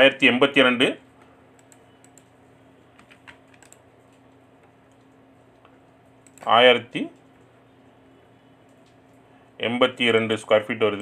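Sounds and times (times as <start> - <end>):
low steady hum: 0.0 - 11.0
keyboard typing clicks: 1.5 - 6.5.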